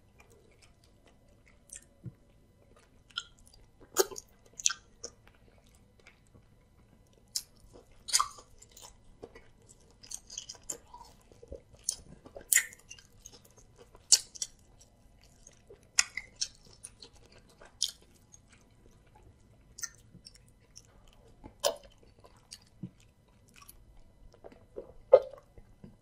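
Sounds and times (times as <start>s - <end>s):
wet chewing: 0.0s - 26.0s.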